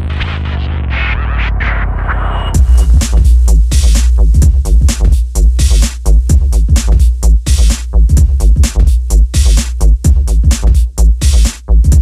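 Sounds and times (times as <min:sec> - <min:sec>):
deep synth bass drone: 0:00.0 - 0:12.0
noisy percussive hits: 0:02.5 - 0:07.8.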